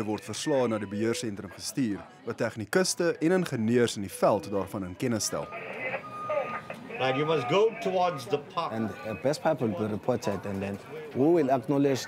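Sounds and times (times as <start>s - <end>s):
faint voice over radio: 5.4s - 9.2s.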